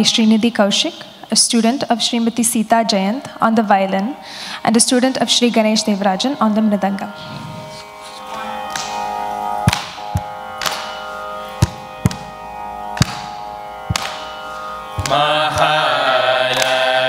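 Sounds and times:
steady drone: 0:03.7 - 0:17.0
mridangam strokes: 0:07.2 - 0:17.0
group of voices singing: 0:14.9 - 0:17.0.

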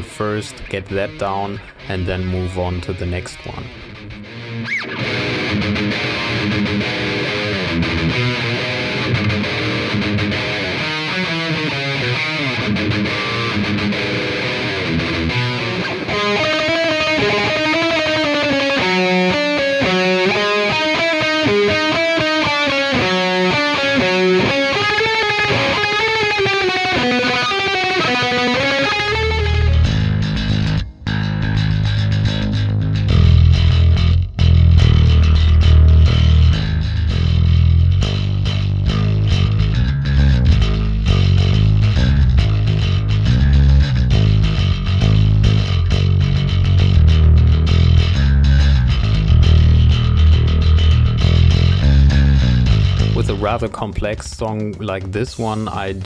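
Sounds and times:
bass guitar riff: 0:00.0 - 0:56.0
electric guitar picked melody: 0:00.0 - 0:56.0.

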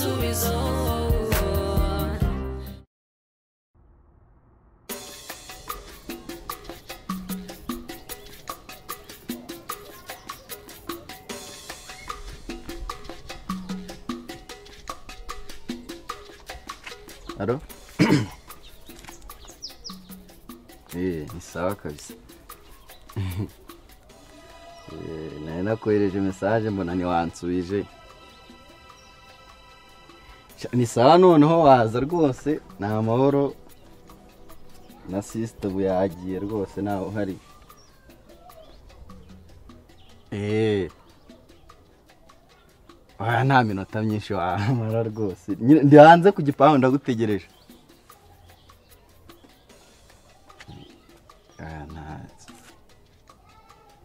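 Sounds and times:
music with clicking beat: 0:04.9 - 0:25.0, 0:26.2 - 0:54.0
faint bird calls: 0:06.8 - 0:12.7, 0:18.4 - 0:20.6, 0:22.3 - 0:25.2, 0:36.1 - 0:43.2, 0:47.5 - 0:54.0
man speaking: 0:17.4 - 0:17.7, 0:20.9 - 0:22.2, 0:24.9 - 0:27.9, 0:30.6 - 0:33.6, 0:35.0 - 0:37.4, 0:40.3 - 0:41.0, 0:43.2 - 0:47.5, 0:51.6 - 0:52.6.

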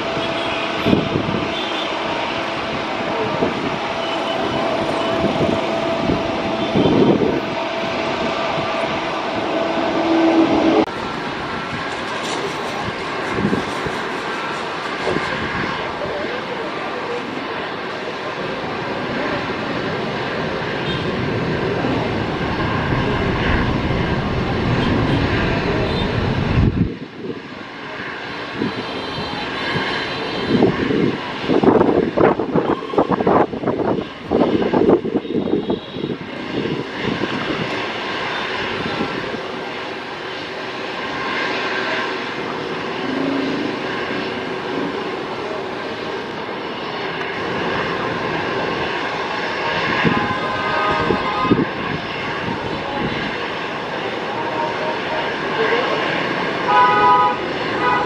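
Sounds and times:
jet engines humming: 0:00.0 - 0:58.0.

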